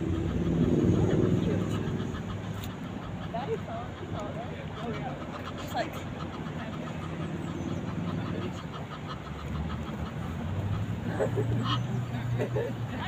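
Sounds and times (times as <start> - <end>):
vehicle engine droning: 0.0 - 4.3, 6.1 - 13.0
murmur of voices: 0.0 - 13.0.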